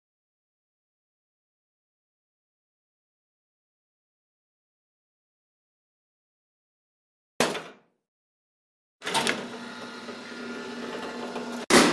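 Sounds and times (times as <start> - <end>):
steel door rolling along track: 9.0 - 11.9.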